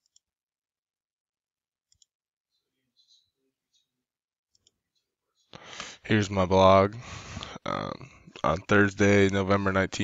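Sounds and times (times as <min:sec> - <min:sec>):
computer mouse clicks: 0:00.0 - 0:00.3, 0:01.9 - 0:02.2, 0:04.5 - 0:04.8.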